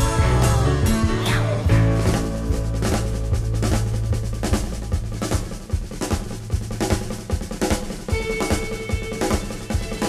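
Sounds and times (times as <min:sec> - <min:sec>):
rock drum kit playing: 0:00.0 - 0:10.0.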